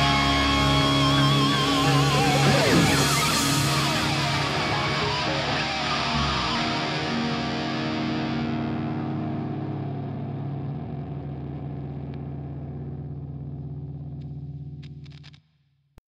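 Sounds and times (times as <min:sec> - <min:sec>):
distorted electric guitar chord: 0:00.0 - 0:15.2.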